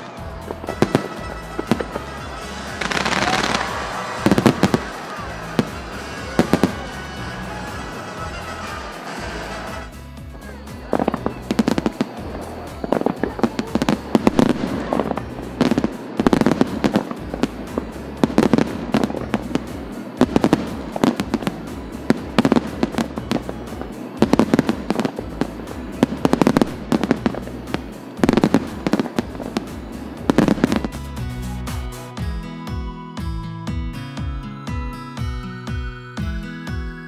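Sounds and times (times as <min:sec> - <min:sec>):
fireworks crackling: 0:00.0 - 0:32.2
sharp firework bangs: 0:00.4 - 0:10.0, 0:10.8 - 0:31.1
firework shell bursts: 0:00.4 - 0:10.2, 0:10.8 - 0:32.2.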